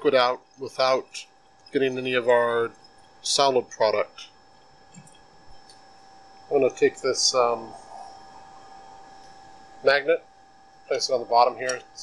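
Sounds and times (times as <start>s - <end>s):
person speaking: 0.0s - 1.2s, 1.8s - 2.7s, 6.5s - 8.2s, 9.8s - 10.2s, 10.9s - 12.0s
faint hum with thin whine: 0.0s - 12.0s.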